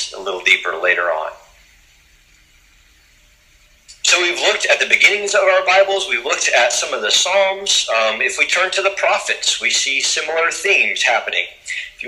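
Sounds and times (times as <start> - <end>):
low recording hiss: 0.0 - 12.0.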